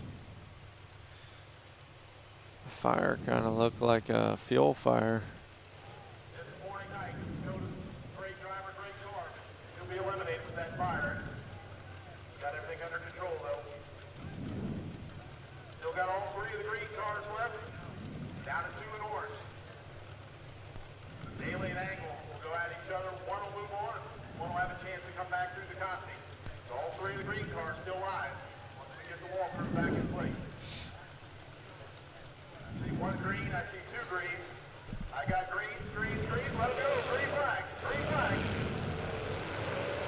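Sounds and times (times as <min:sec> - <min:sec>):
commentary: 0:02.7 - 0:05.4, 0:06.3 - 0:14.4, 0:21.2 - 0:39.9
short low rumbles: 0:05.2 - 0:22.4, 0:25.8 - 0:40.0.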